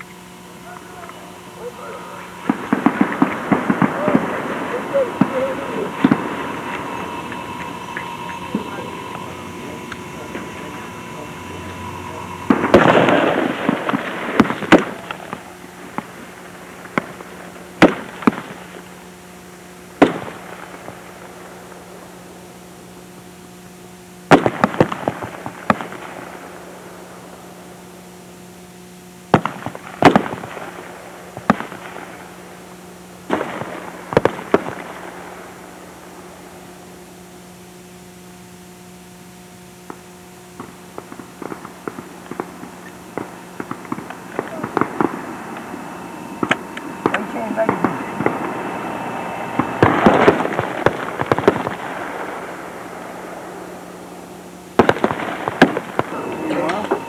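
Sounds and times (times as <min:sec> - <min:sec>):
steady low hum: 0:00.0 - 0:57.0
rifle shots with echo: 0:00.6 - 0:16.1, 0:20.0 - 0:20.9, 0:29.3 - 0:32.1, 0:49.5 - 0:52.6, 0:54.8 - 0:56.3.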